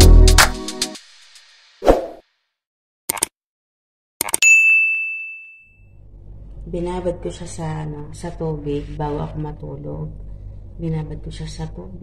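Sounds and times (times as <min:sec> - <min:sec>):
bright bell ding: 0:04.4 - 0:05.9.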